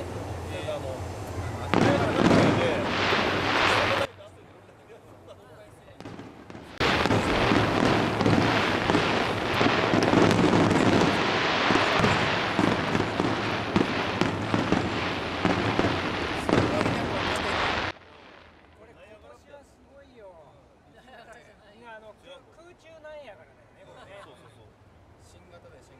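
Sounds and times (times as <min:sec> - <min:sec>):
fireworks bangs: 0:00.0 - 0:04.6, 0:05.9 - 0:19.1
fireworks crackling: 0:00.0 - 0:19.4.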